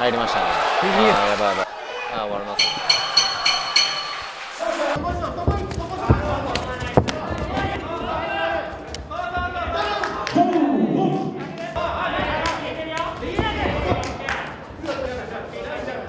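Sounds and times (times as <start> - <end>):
ring bell struck rapidly: 2.6 - 4.6.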